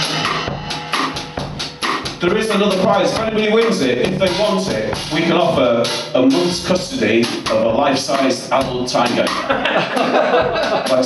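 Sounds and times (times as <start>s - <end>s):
cymbal strokes: 0.0s - 8.3s
kick drum beat: 0.2s - 5.4s, 10.3s - 11.0s.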